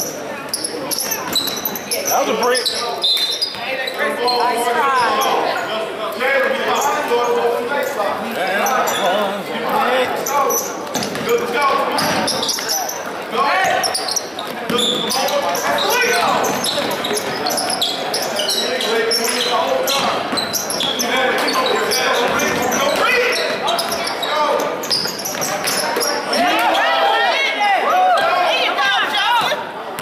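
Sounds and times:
din of crowd chatter: 0.0 - 30.0
basketball bouncing on hardwood floor: 11.0 - 11.4.

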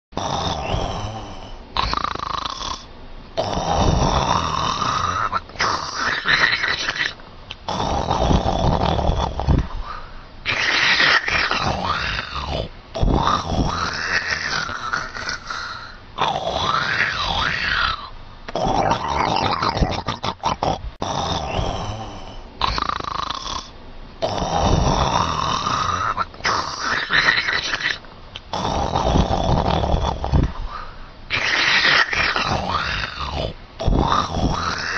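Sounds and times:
person snoring loudly: 0.2 - 34.9.

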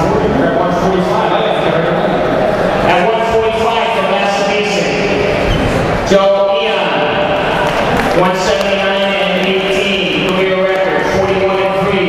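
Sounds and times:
man speaking over public address: 0.0 - 12.0.

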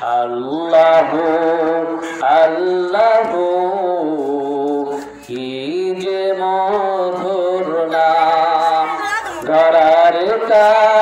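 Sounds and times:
man singing into a microphone: 0.0 - 11.0.

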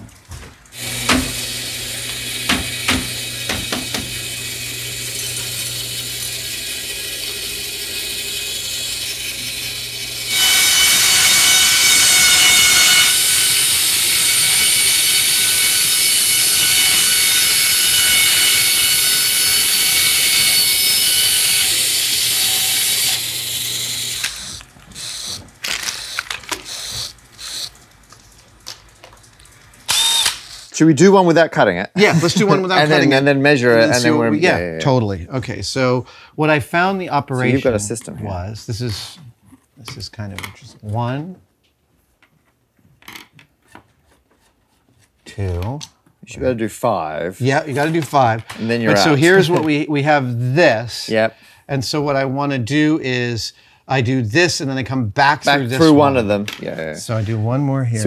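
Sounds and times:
bandsaw motor humming: 0.7 - 28.1, 29.8 - 30.8, 47.5 - 49.8
saw blade cutting plastic tubes: 0.8 - 27.9, 29.9 - 30.8.

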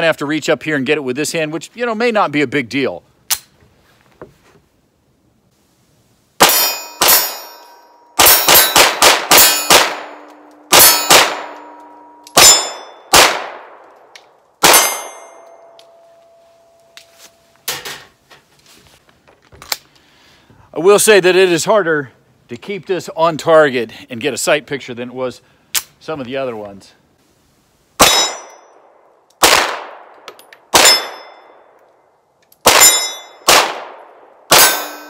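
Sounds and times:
steel targets ringing: 6.4 - 13.1, 14.6 - 17.5, 28.0 - 28.8, 30.8 - 31.7, 32.7 - 33.5, 34.5 - 35.0
pistol shots: 8.2 - 11.6, 12.3 - 15.4, 28.0 - 31.7, 32.6 - 35.0.

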